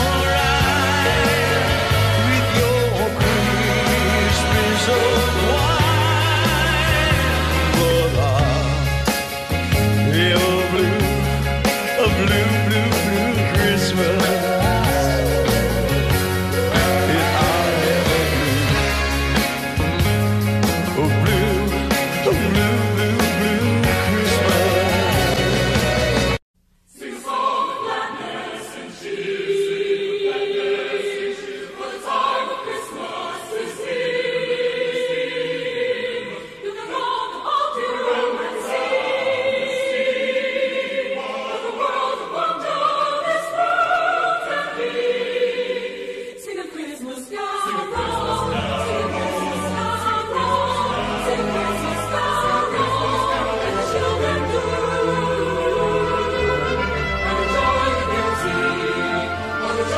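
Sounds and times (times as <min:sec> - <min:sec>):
choir singing: 0:00.0 - 0:09.2, 0:10.1 - 0:20.0, 0:20.9 - 0:59.9
recorded music: 0:00.0 - 0:46.5, 0:47.5 - 0:59.9.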